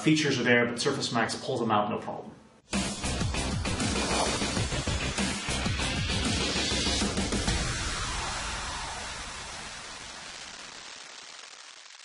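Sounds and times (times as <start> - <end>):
hiss of noise: 3.8 - 12.0.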